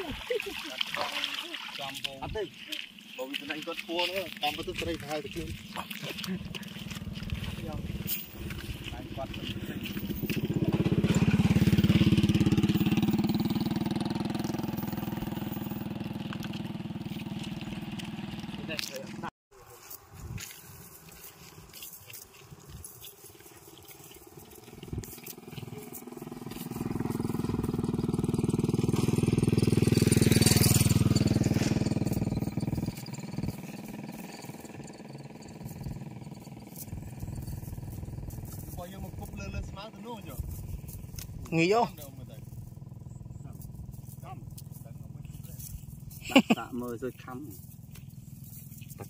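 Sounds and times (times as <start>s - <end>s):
motorcycle engine passing: 3.0s - 19.3s, 22.4s - 49.0s.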